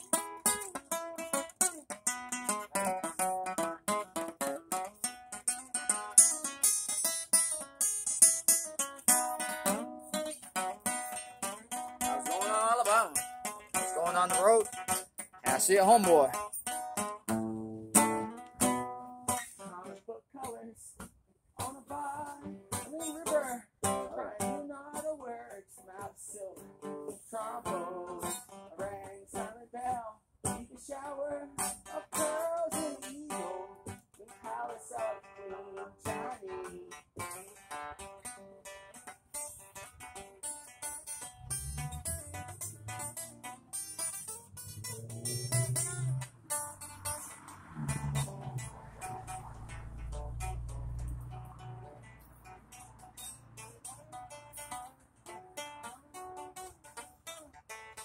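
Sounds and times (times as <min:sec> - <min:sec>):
acoustic guitar strumming: 0:00.0 - 0:20.7, 0:21.6 - 0:58.0.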